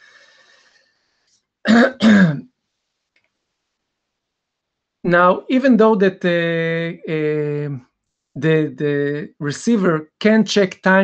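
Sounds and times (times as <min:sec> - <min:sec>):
man clearing his throat: 0:01.7 - 0:02.4.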